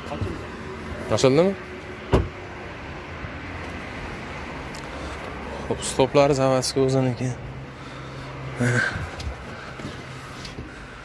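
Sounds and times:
car door shutting: 2.1 - 2.4.

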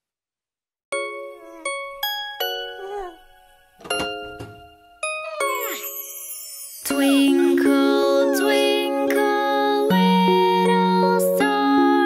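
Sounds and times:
bell-like chime notes: 5.6 - 8.2.

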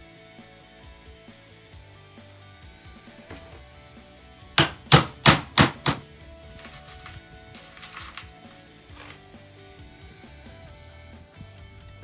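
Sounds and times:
soft background music: 0.0 - 12.0
hammer driving nail into wood: 4.6 - 6.0.

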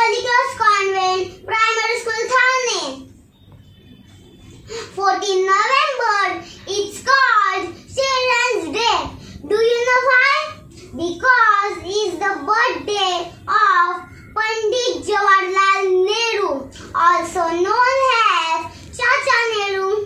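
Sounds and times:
girl reciting in sing-song chant: 0.0 - 3.2, 4.6 - 20.0.

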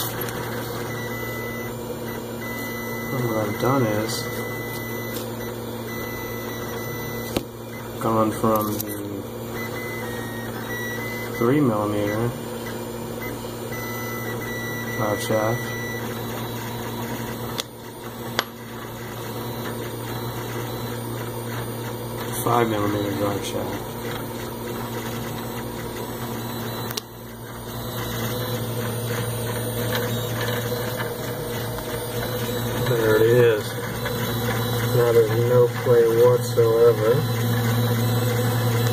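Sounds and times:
low mechanical hum: 0.0 - 38.9
thin high whine: 13.4 - 38.9.

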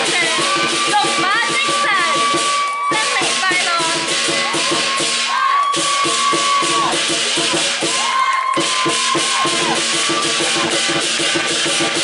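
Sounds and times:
large drum beating: 0.0 - 12.0.

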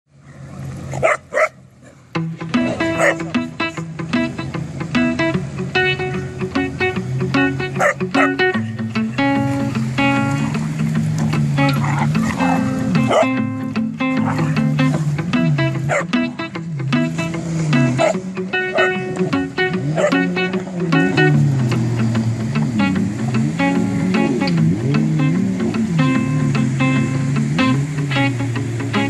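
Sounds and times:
guitar music: 0.7 - 29.0
dog barking: 0.9 - 2.0, 2.6 - 3.3, 7.8 - 8.4, 11.7 - 13.4, 14.2 - 14.6, 15.9 - 16.1, 18.0 - 19.0, 20.0 - 20.2.

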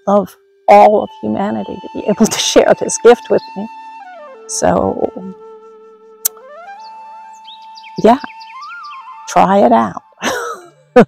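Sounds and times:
flute-like melody: 0.0 - 11.0.

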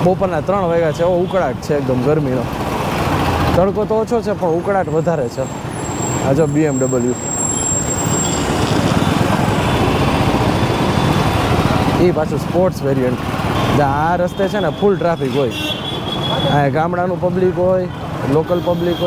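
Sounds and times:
street traffic: 0.0 - 19.0.

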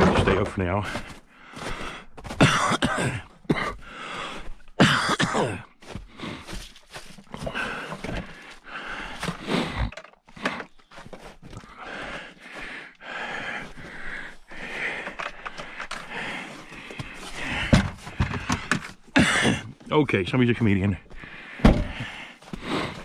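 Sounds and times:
footsteps crunching in snow: 5.6 - 8.6.

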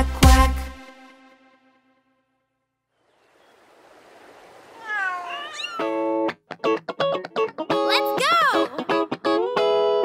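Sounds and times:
cartoon kitten meows: 4.8 - 6.0.

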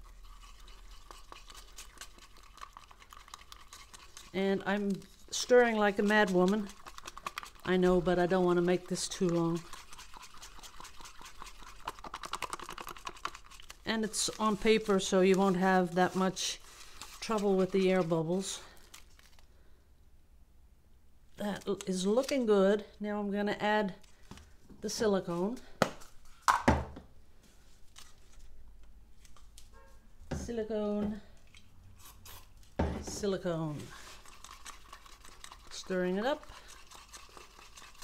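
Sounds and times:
stick stirring paint in plastic cup: 0.0 - 19.4, 31.0 - 38.0.

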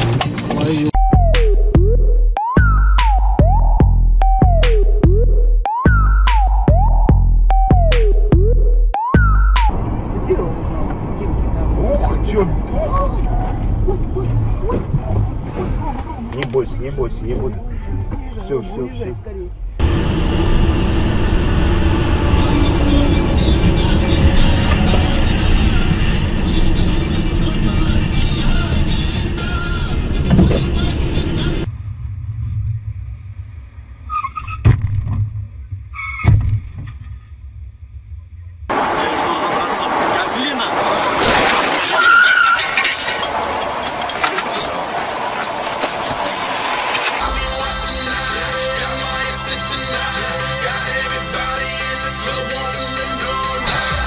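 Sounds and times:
road and engine noise: 0.0 - 2.3, 9.2 - 54.0.

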